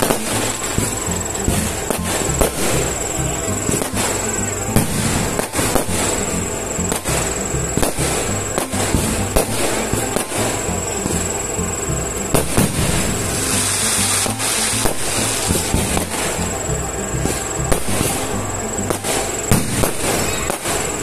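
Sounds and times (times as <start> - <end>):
firework shells bursting: 0.0 - 21.0
music playing: 0.0 - 21.0.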